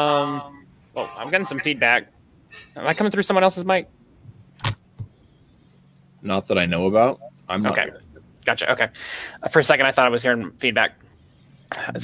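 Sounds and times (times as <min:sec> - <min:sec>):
low steady hum: 0:00.0 - 0:12.0
faint high whine: 0:05.0 - 0:12.0.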